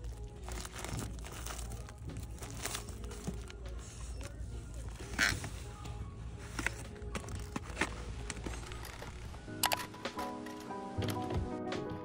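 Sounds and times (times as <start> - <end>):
plastic wrap squeaky rasp: 0.0 - 5.7
faint background music: 0.0 - 12.0.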